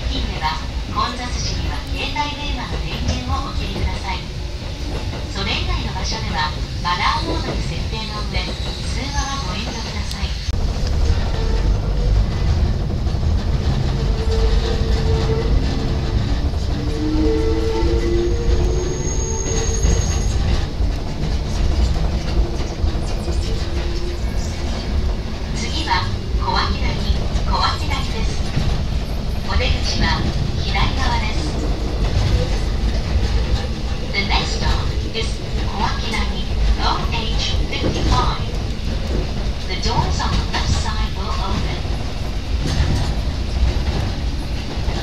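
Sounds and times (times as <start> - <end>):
train wheels rumbling on track: 0.0 - 45.0.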